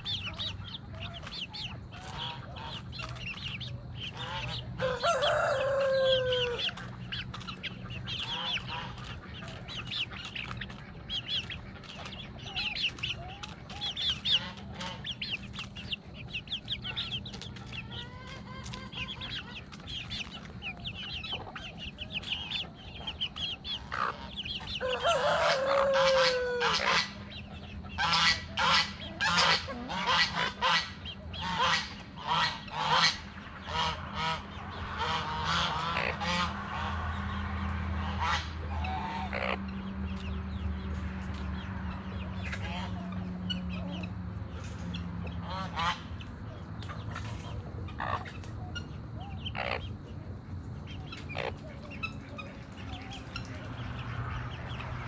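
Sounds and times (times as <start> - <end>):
geese honking: 0.0 - 39.8, 42.0 - 50.1
chickens clucking: 0.0 - 55.0
chicks peeping: 0.0 - 55.0.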